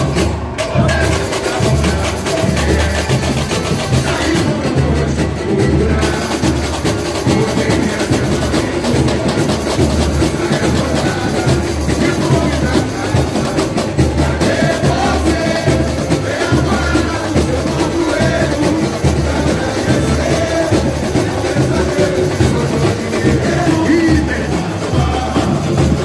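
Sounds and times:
bass drums beating: 0.0s - 26.0s
samba percussion band: 0.0s - 26.0s.

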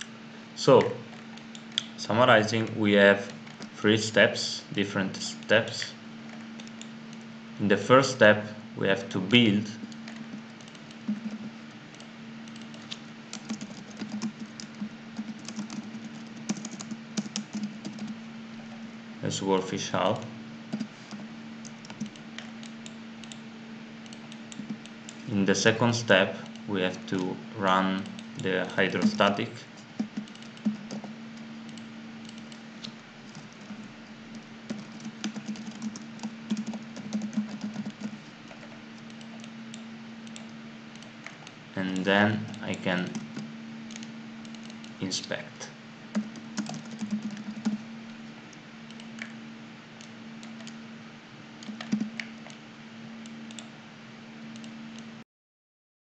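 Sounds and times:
low electrical hum: 0.0s - 55.2s
computer keyboard typing: 9.8s - 18.2s, 20.7s - 23.4s, 24.0s - 25.3s, 28.0s - 29.4s, 30.0s - 32.6s, 33.2s - 41.4s, 42.0s - 45.0s, 46.1s - 47.8s, 48.9s - 49.4s, 50.0s - 50.8s, 51.6s - 52.6s, 53.2s - 53.7s.

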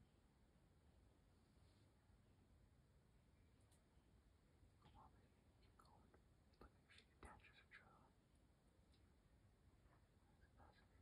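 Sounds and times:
faint whispering: 4.8s - 8.2s, 9.7s - 11.0s.

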